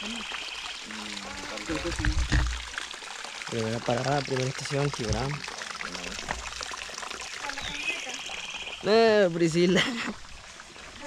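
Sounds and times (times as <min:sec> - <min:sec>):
water trickling over rocks: 0:00.0 - 0:11.0.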